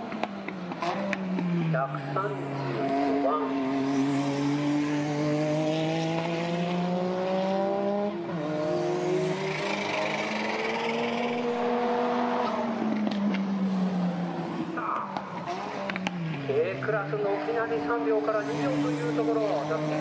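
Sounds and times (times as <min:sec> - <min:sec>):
race car engines accelerating: 0:00.0 - 0:20.0.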